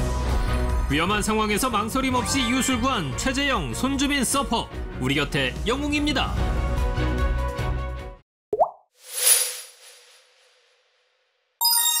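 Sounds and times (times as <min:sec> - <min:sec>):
background music: 0:00.0 - 0:08.2.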